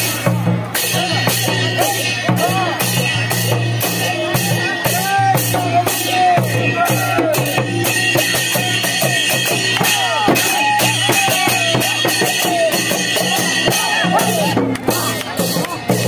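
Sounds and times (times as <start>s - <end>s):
barrel drum beaten fast: 0.0s - 16.0s
hand cymbals clashing: 0.0s - 16.0s
voices calling out: 0.0s - 16.0s.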